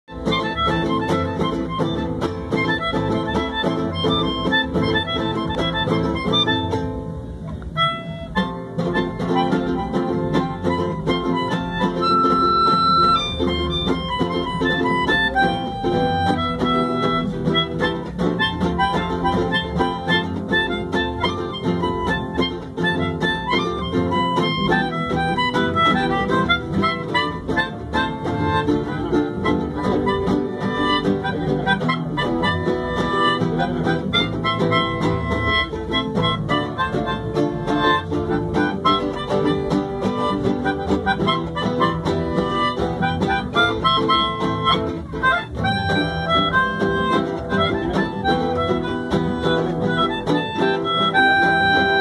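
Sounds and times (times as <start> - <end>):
melodica playing fast melody: 0.0 - 7.0, 7.8 - 52.0
acoustic guitars: 0.0 - 52.0.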